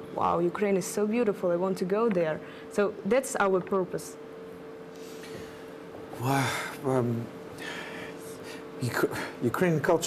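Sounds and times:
faint studio hum: 0.0 - 10.0.

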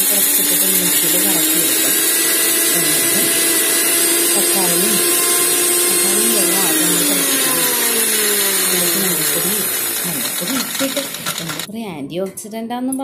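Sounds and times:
mixer grinder motor winding down: 0.0 - 11.7
person speaking: 0.0 - 12.3.

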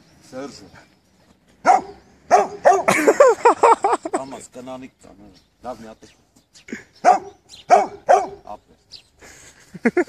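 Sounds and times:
dog barking: 1.6 - 2.9, 7.0 - 8.5.

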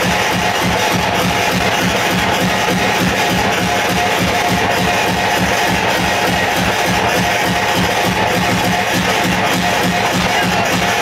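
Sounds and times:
hardcore electronic dance music: 0.0 - 11.0.

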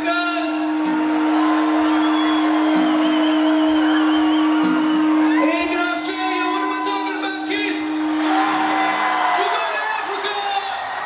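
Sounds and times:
concert crowd noise: 0.0 - 11.0
rock band sustained note: 0.0 - 11.0.

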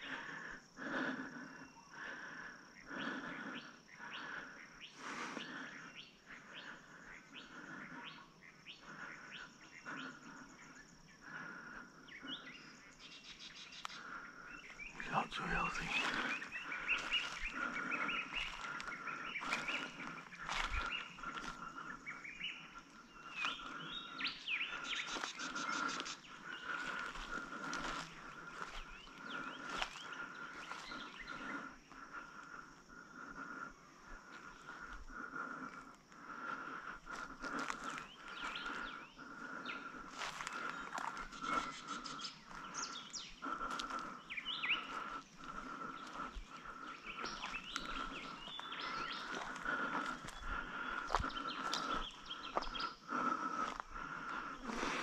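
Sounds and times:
birds chirping and calling: 0.0 - 55.0
footsteps crunching through dry leaves: 15.1 - 17.6, 18.3 - 21.6, 26.8 - 28.8, 40.1 - 41.2.

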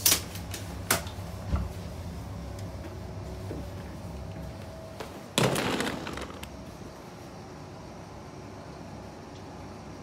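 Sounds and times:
low hum inside a train: 0.0 - 5.4, 6.1 - 10.0.

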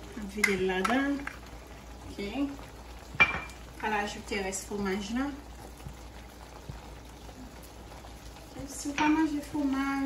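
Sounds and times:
sauce simmering in a pan: 0.0 - 10.0.

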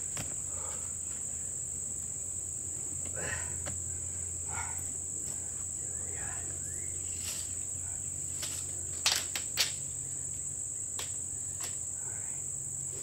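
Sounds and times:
insect chorus drone: 0.0 - 13.0.

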